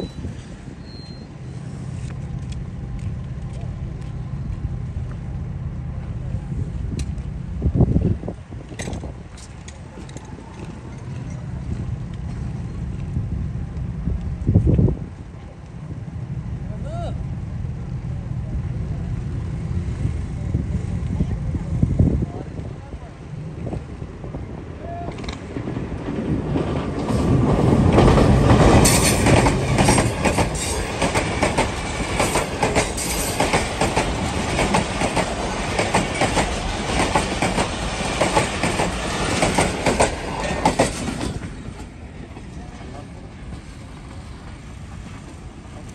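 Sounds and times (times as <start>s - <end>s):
train rumble: 0.0s - 45.9s
wheels clattering over rail joints: 25.1s - 42.6s.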